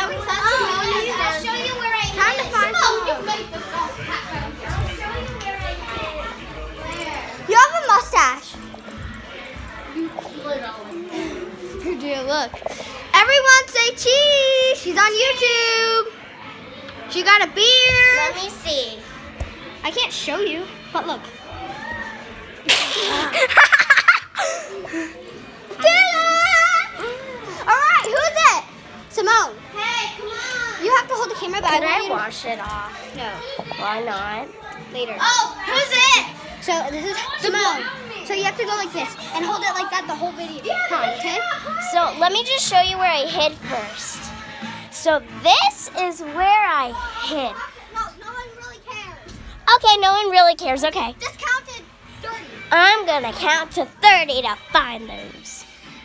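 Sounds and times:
children talking and playing: 0.0s - 56.0s.

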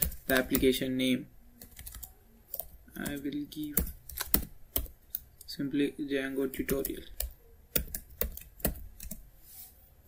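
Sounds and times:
computer keyboard typing: 0.0s - 0.8s, 1.6s - 5.5s, 6.4s - 9.3s.

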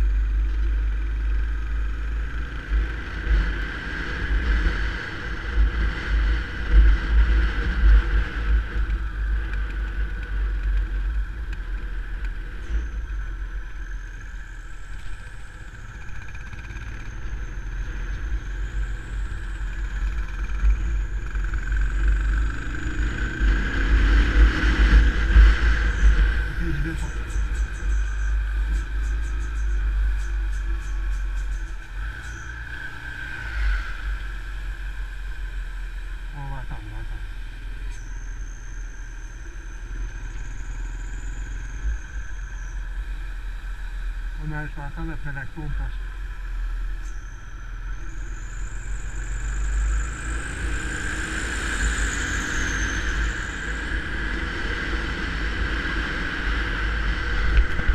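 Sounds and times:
motorcycle running: 0.0s - 57.9s
wind rumble on microphone: 0.0s - 57.9s.

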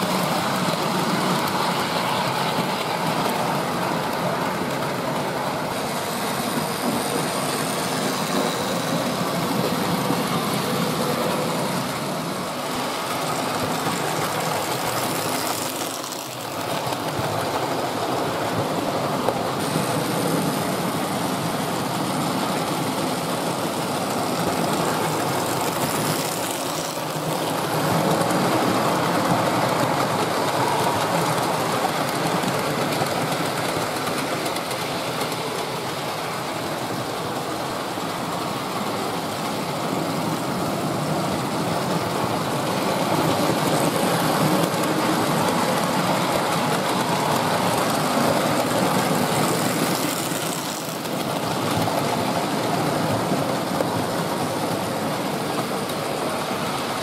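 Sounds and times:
model trains running on track: 0.0s - 57.0s.

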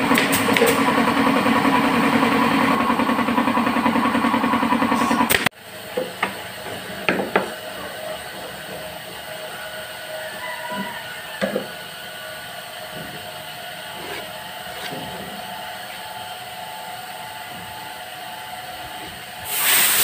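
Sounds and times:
steady background hum: 0.0s - 20.0s.

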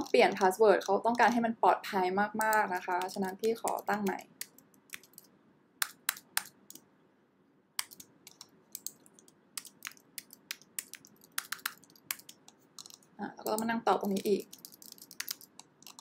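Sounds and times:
computer keyboard typing: 0.0s - 1.4s, 2.4s - 6.8s, 7.8s - 16.0s.

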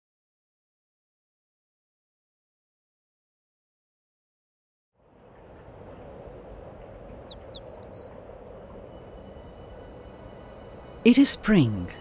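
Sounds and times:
bird chirping: 6.0s - 8.1s, 10.8s - 12.0s.

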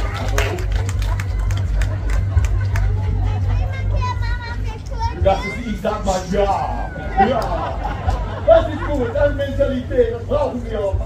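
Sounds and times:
indistinct crowd talking: 0.0s - 11.0s
steady low rumble: 0.0s - 11.0s
child's high voice: 3.4s - 5.7s.

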